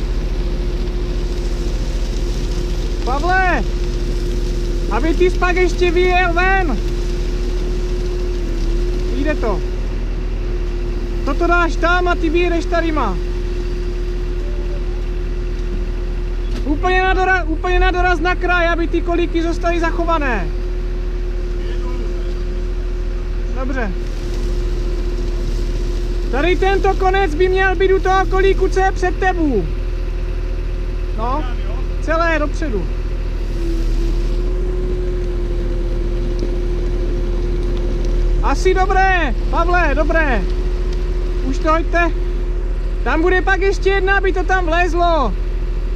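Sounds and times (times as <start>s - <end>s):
excavator diesel engine running: 0.0s - 45.9s
hydraulic whine: 0.0s - 45.9s.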